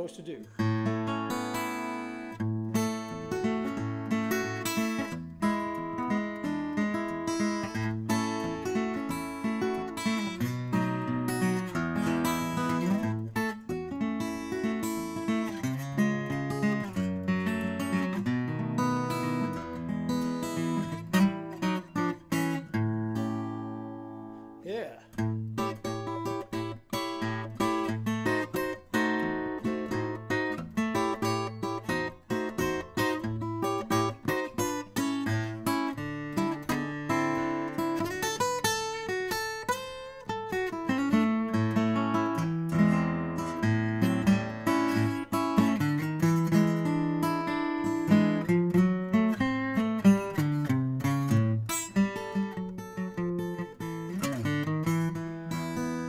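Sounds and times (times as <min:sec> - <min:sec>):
acoustic guitar fingerpicking: 0:00.3 - 0:56.0.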